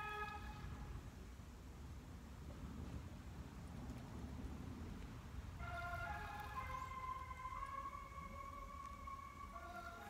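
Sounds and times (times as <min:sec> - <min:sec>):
faint low rumble: 0:00.0 - 0:10.0.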